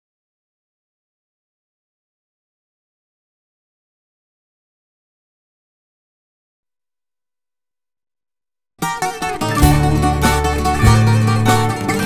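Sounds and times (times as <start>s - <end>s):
acoustic guitar: 8.8s - 12.0s
bouzouki playing: 8.8s - 12.0s
low bass line: 9.5s - 12.0s.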